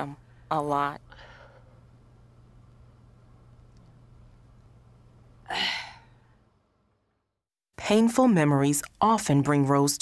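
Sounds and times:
woman sighing heavily: 0:05.5 - 0:06.2.

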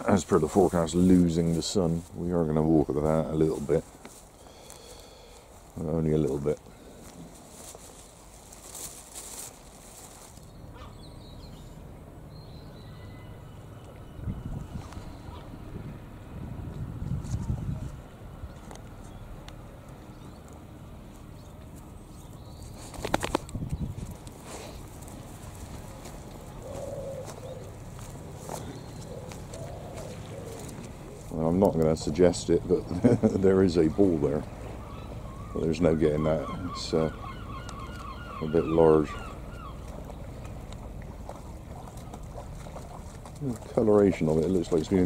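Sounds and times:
faint bird calls: 0:08.6 - 0:15.7, 0:21.2 - 0:31.5, 0:32.5 - 0:45.0
wind rumble on microphone: 0:14.0 - 0:19.0, 0:22.8 - 0:31.3.

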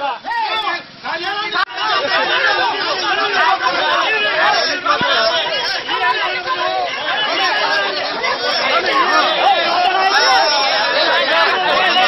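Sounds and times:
crowd of men talking: 0:00.0 - 0:12.0.

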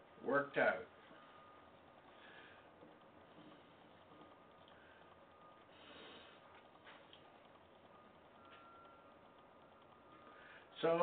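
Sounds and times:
faint thin high tone: 0:08.4 - 0:09.1.

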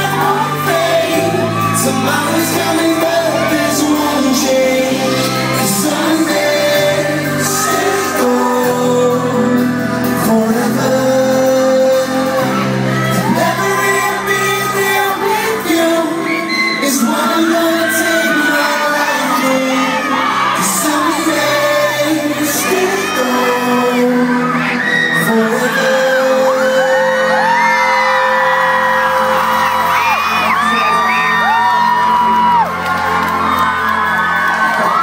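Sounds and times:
man singing into a microphone: 0:00.0 - 0:32.8
fans screaming and whooping: 0:00.0 - 0:35.0
live pop band playing: 0:00.0 - 0:35.0.

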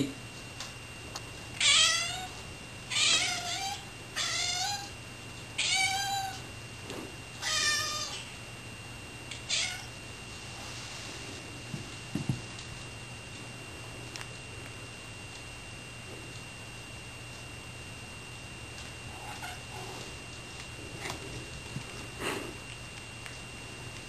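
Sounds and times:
cats meowing: 0:02.9 - 0:04.9, 0:07.4 - 0:08.3, 0:19.2 - 0:19.7.

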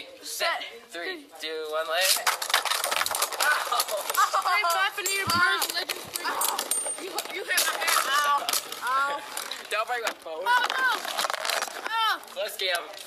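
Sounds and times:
children shouting and chattering: 0:03.3 - 0:09.6.

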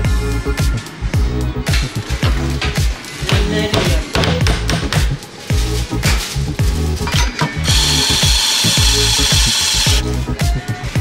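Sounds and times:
background music with a beat: 0:00.0 - 0:11.0
espresso grinder whirring: 0:07.6 - 0:10.0.

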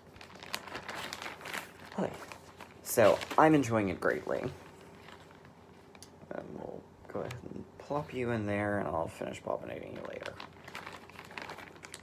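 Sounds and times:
fabric rustling and crinkling: 0:00.0 - 0:06.0, 0:09.7 - 0:12.0.

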